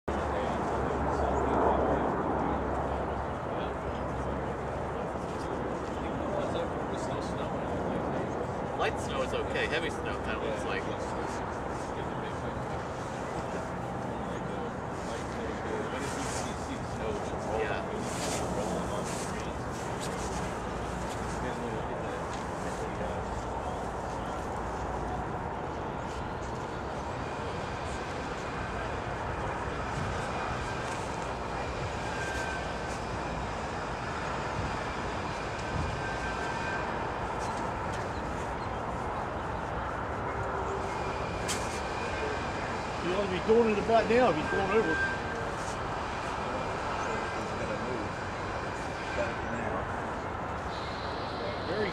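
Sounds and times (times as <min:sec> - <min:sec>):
locomotive engines rumbling: 0:00.2 - 0:51.9.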